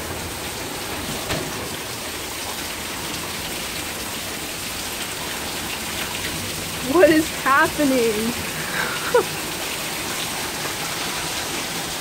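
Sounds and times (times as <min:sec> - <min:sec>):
heavy rain pouring: 0:00.0 - 0:12.0.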